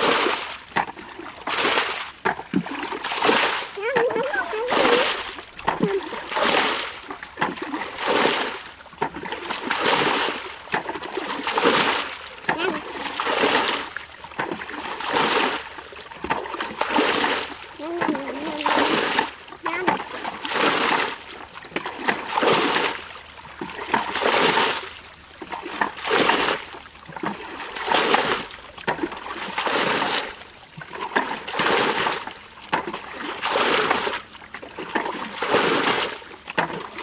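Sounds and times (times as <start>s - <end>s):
water splashing: 0.0s - 37.0s.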